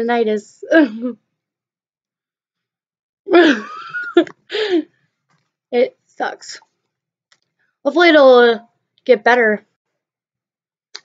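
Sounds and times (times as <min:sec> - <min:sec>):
woman laughing: 0:03.3 - 0:04.8.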